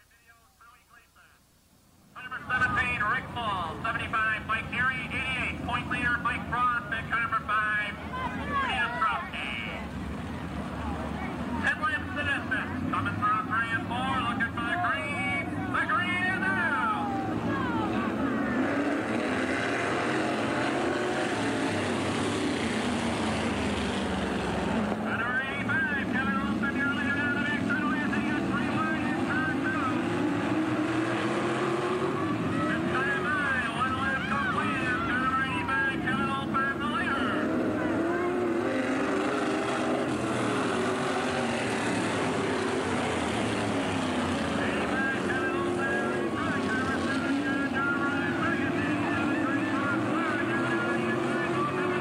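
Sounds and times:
engine note climbing: 2.2s - 52.0s
race car engines passing: 2.2s - 52.0s
loud rush of passing cars: 2.5s - 52.0s.

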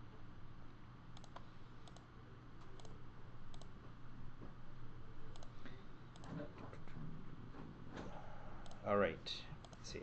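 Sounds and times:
faint low hum: 0.0s - 10.0s
computer mouse clicks: 1.1s - 3.8s, 5.3s - 6.4s, 8.6s - 8.9s, 9.6s - 9.8s.

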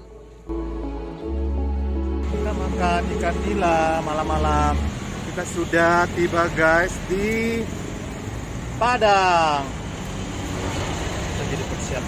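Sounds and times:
low traffic rumble: 0.0s - 12.0s.

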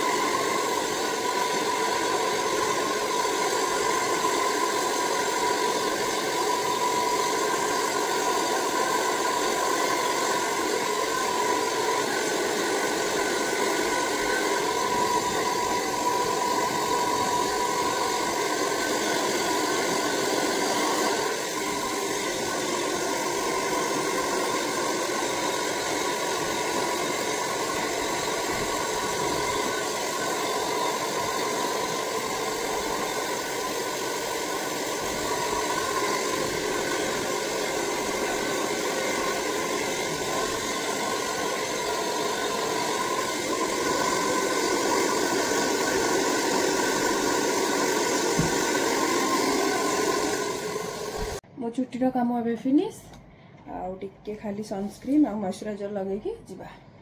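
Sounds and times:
hair dryer running: 0.0s - 51.4s.

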